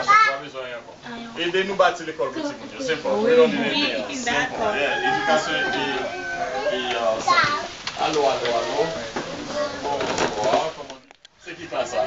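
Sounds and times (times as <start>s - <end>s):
children talking: 0.0s - 1.4s, 2.2s - 10.7s
child calling out: 6.4s - 7.7s.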